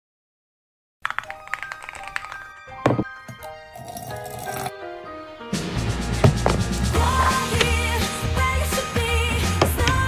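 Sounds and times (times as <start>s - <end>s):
background music of quick notes: 1.0s - 10.0s.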